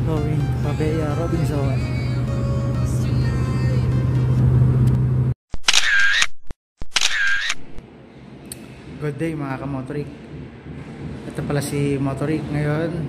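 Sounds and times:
background music with low drone: 0.0s - 5.0s, 7.9s - 13.0s.

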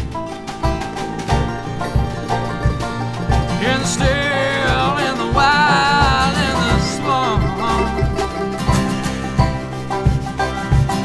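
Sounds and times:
banjo: 0.0s - 11.0s
bending lead melody: 0.0s - 11.0s
bowed upright bass: 0.0s - 11.0s
kick drum beat: 0.0s - 11.0s.

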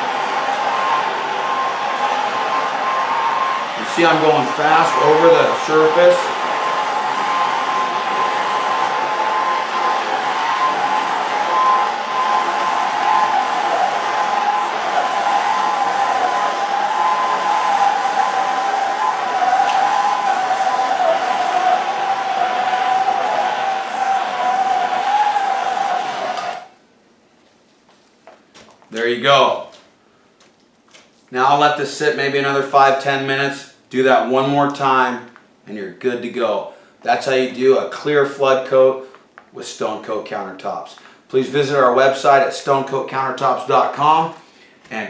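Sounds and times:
gas torch hissing: 1.6s - 26.7s.

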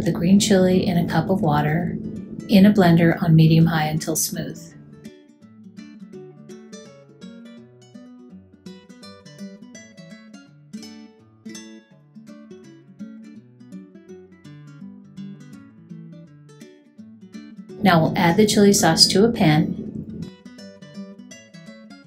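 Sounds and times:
acoustic guitar plucked notes: 0.0s - 22.0s.

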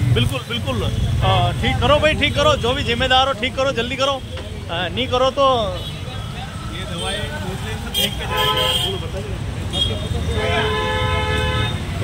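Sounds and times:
traffic engines rumbling: 0.0s - 12.0s
vehicle horn honking: 7.9s - 9.1s, 9.7s - 12.0s.

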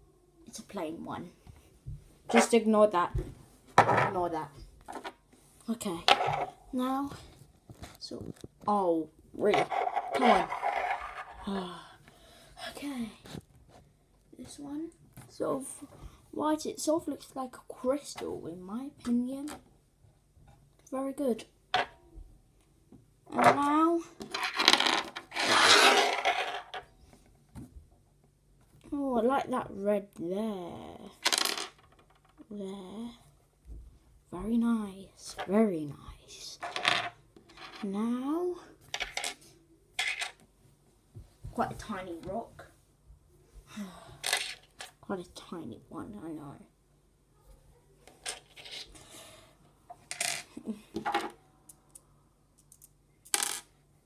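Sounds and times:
rock scraping across a table: 9.5s - 11.5s, 24.2s - 26.8s.

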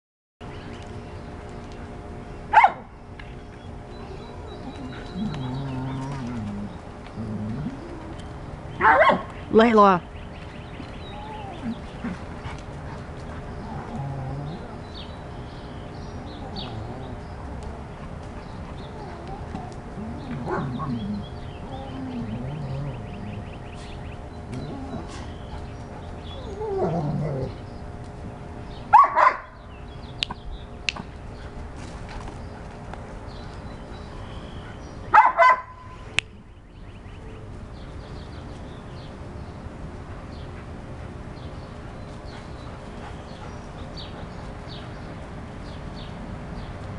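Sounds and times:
dog barking: 2.5s - 2.8s, 8.8s - 9.3s, 28.9s - 29.5s, 35.1s - 35.8s
drawn-out dog vocalization: 4.2s - 9.3s, 11.0s - 15.0s, 16.2s - 27.6s
dog making wavering sounds: 4.4s - 9.0s, 24.5s - 25.3s.

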